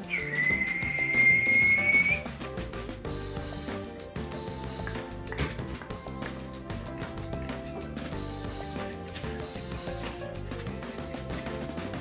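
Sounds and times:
long high whistled note: 0.0s - 2.3s
background music: 0.0s - 12.0s.

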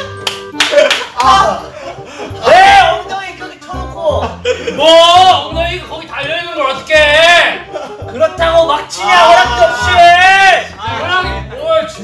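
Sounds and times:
background music: 0.0s - 12.0s
men shouting and laughing: 0.0s - 12.0s
hand claps: 0.1s - 1.5s.

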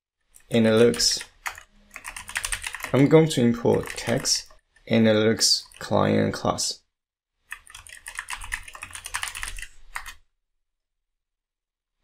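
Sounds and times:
typing on computer keyboard: 0.8s - 4.6s, 7.5s - 10.2s.

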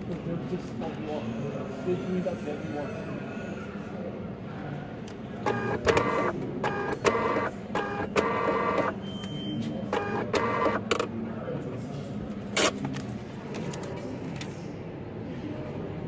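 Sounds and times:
printer buzzing bursts: 5.4s - 9.1s, 9.9s - 11.1s
printer clicks: 5.5s - 9.0s, 10.0s - 11.1s.

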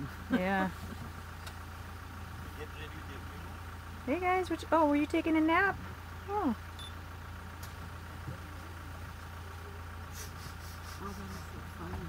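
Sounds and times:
vehicle engine idling: 0.0s - 12.0s
murmured voices: 7.9s - 12.0s.

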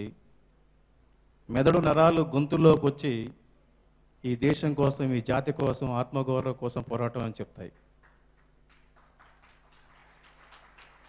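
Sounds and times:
low steady hum: 0.0s - 10.2s
audience hand claps: 7.7s - 11.0s.

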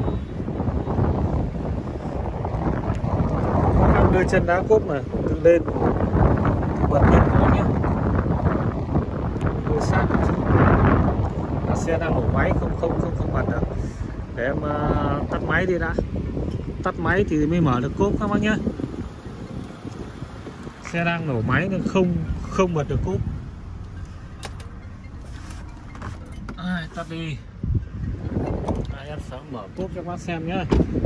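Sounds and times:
wind buffeting microphone: 0.0s - 31.0s
car engine idling: 11.0s - 31.0s.

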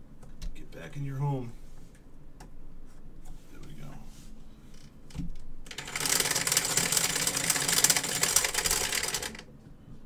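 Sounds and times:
dice rattling in plastic dome: 5.7s - 9.4s.

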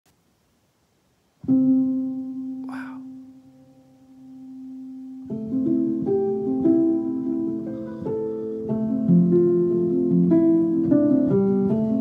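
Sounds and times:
soft muted piano notes: 1.4s - 12.0s.

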